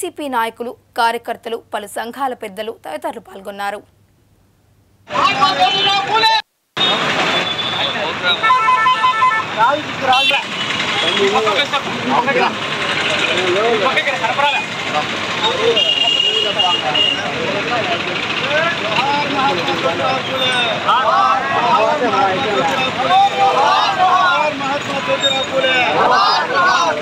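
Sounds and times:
passing traffic: 0:05.1 - 0:27.0
vehicle horn: 0:06.8 - 0:11.3, 0:15.7 - 0:17.3
crowd of voices: 0:07.0 - 0:27.0.

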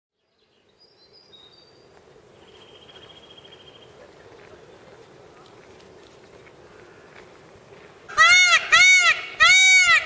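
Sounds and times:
faint outdoor hum: 0:00.2 - 0:09.9.

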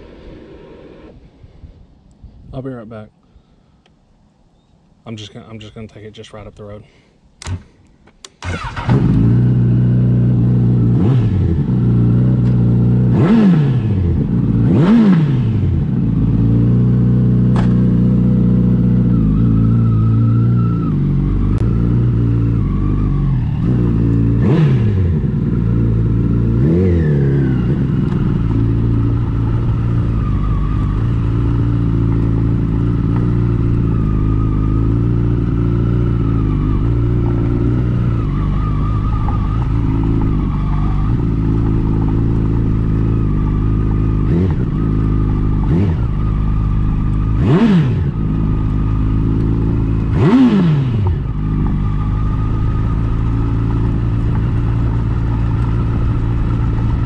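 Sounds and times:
motorcycle throttle blips: 0:07.4 - 0:57.0
motorcycle engine idling: 0:27.5 - 0:57.0.

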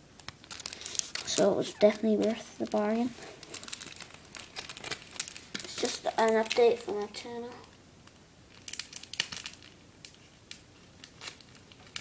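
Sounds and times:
packaging crinkling: 0:00.2 - 0:12.0.

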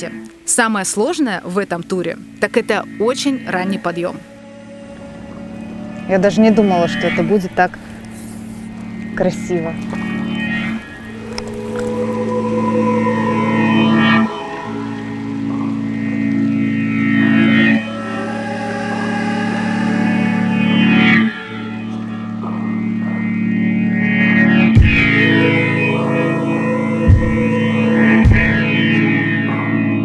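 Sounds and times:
background music sustained chords: 0:00.0 - 0:30.0.

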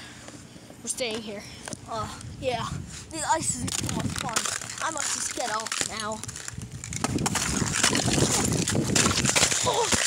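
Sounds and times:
ice crunching underfoot: 0:03.6 - 0:10.0.

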